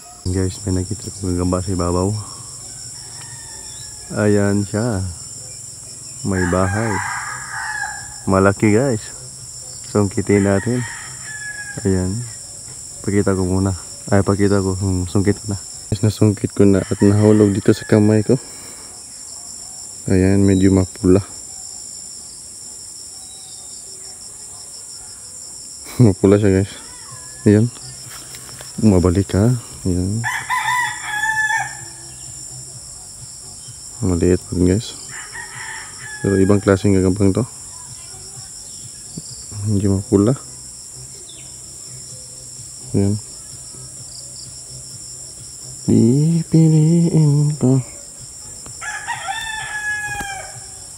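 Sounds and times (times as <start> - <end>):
crickets chirping: 0.0 - 50.9
high-pitched insect chorus: 0.0 - 50.9.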